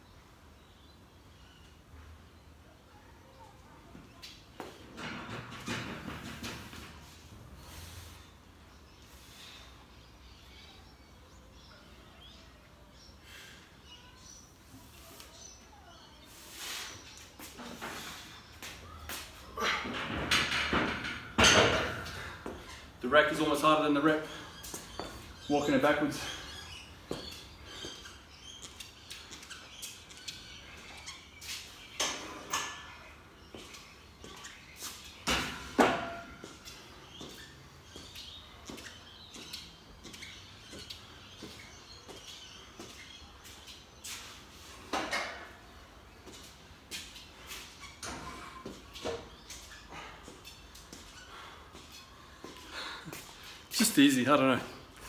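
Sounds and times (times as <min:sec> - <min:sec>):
footsteps on concrete floor: 0:16.6 - 0:19.6, 0:24.3 - 0:25.4, 0:26.1 - 0:31.9, 0:33.4 - 0:35.2, 0:36.4 - 0:44.9, 0:45.6 - 0:53.8.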